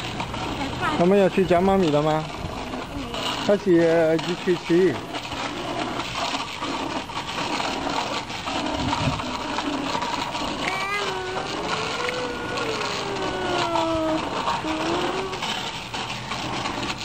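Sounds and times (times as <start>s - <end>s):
bicycle rolling over concrete: 0.0s - 17.0s.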